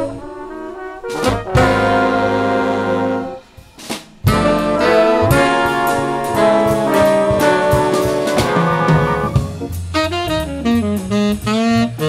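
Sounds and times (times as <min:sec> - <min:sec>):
loud held brass chord: 0:00.0 - 0:03.6, 0:04.2 - 0:10.1
jazz big band playing: 0:00.0 - 0:12.0
sharp drum hit: 0:03.4 - 0:11.1.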